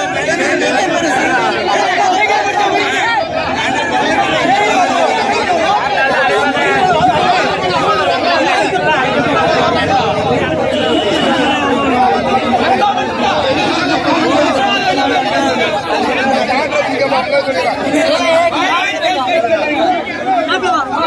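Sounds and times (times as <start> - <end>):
crowd talking over one another: 0.0 - 21.0.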